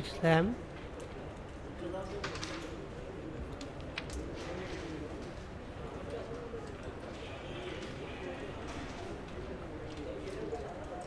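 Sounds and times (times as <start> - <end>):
faint murmured voices: 0.0 - 11.0.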